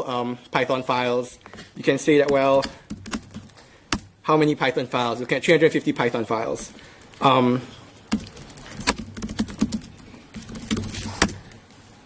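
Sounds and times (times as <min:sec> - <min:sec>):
laptop keyboard typing: 0:02.2 - 0:04.1, 0:06.0 - 0:11.7.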